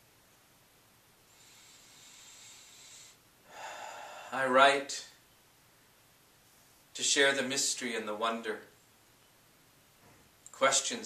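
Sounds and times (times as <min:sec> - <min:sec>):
man breathing in: 0:01.3 - 0:04.4.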